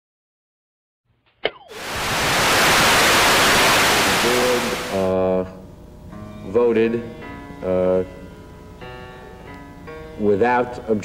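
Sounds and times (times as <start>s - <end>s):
broadcast sound: 1.7s - 5.1s
television static hiss: 1.7s - 5.2s.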